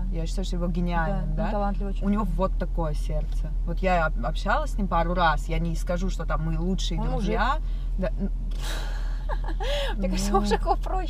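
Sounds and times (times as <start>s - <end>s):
car cabin hum: 0.0s - 11.0s
woman exhaling: 8.6s - 10.0s.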